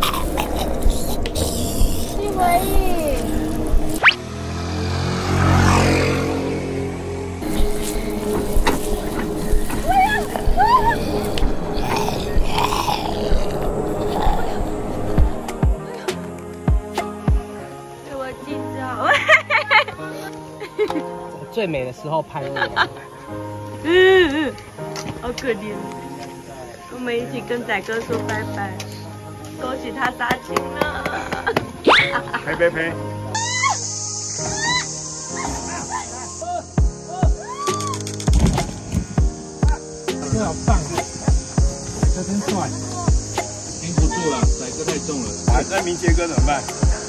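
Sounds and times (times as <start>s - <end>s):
background music: 0.0s - 47.0s
high pitch rising and falling glides: 1.3s - 8.7s
low beat: 6.9s - 17.5s, 38.3s - 45.8s.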